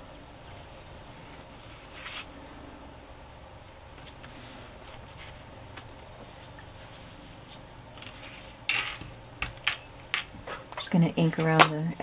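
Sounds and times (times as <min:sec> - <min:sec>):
paper rustling and rubbing: 0:00.5 - 0:02.3, 0:04.0 - 0:08.6.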